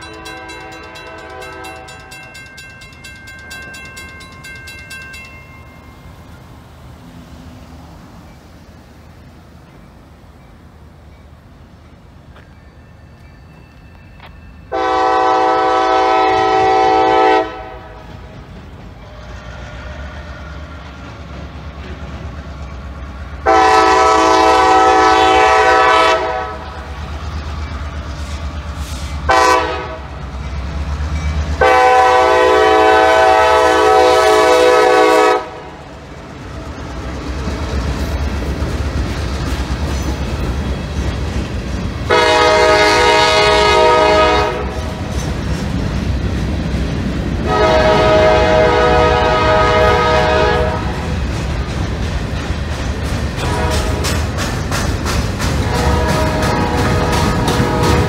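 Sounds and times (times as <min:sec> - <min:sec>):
locomotive engine rumbling: 0:00.0 - 0:58.0
train running over rails: 0:00.0 - 0:58.0
locomotive air horn blasts: 0:00.2 - 0:02.1, 0:14.7 - 0:18.0, 0:23.4 - 0:26.8, 0:28.9 - 0:30.2, 0:31.6 - 0:35.8, 0:42.1 - 0:44.8, 0:47.4 - 0:51.0, 0:53.4 - 0:54.2, 0:55.6 - 0:58.0.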